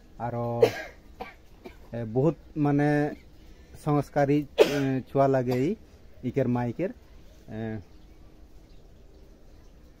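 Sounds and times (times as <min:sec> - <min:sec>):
sharp cough: 0:00.6 - 0:01.9, 0:04.6 - 0:05.8
man speaking: 0:01.9 - 0:07.9.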